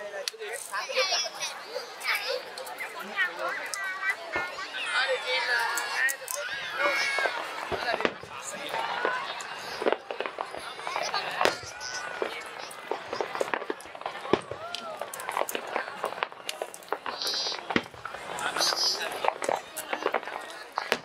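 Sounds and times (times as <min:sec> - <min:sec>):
fireworks bangs and crackles: 0:00.0 - 0:21.0
spectators' voices: 0:00.0 - 0:21.0.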